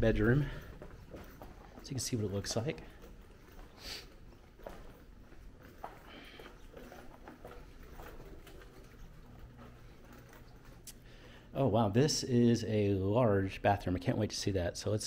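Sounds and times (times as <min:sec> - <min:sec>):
faint footsteps: 0:00.0 - 0:11.6
low room hum: 0:00.0 - 0:15.0.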